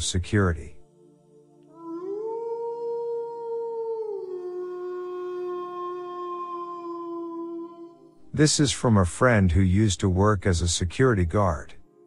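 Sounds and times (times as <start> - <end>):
howl-like tone gliding down: 1.7 - 8.1.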